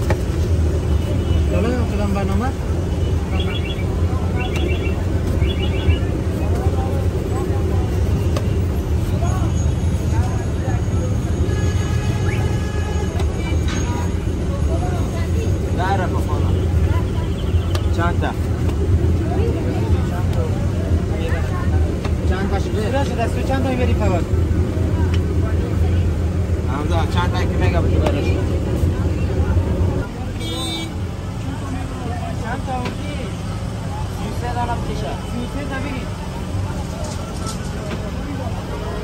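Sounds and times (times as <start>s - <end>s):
traffic rumble: 0.0s - 39.0s
people talking: 1.0s - 11.5s, 13.1s - 39.0s.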